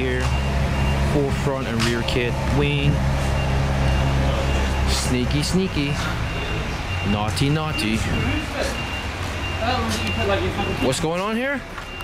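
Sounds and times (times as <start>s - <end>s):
indistinct voices talking: 0.0s - 12.0s
low vehicle engine hum: 0.0s - 12.0s
short high beeps: 3.4s - 11.0s.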